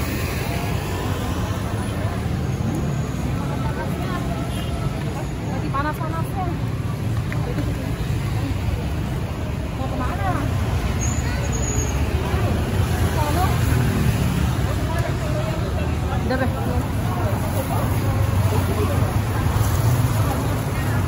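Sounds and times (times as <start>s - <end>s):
indistinct chatter of people: 0.0s - 21.0s
street traffic rumble: 0.0s - 21.0s.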